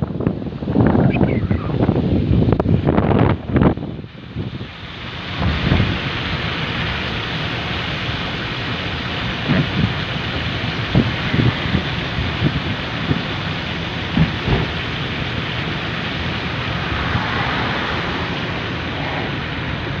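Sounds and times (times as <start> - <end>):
wind rushing: 0.0 - 6.1, 15.9 - 20.0
tyre spray on wet road: 3.8 - 20.0
low thumps: 14.0 - 14.9.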